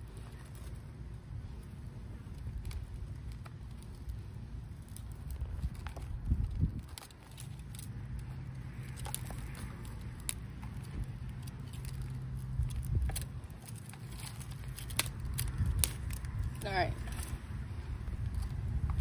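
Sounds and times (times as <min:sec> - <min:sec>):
hands pressing dry soil: 0:00.0 - 0:19.0
steady low rumble: 0:00.0 - 0:19.0.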